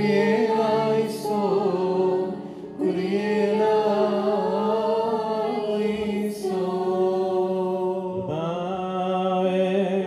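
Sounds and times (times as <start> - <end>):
liturgical chant: 0.0 - 10.0.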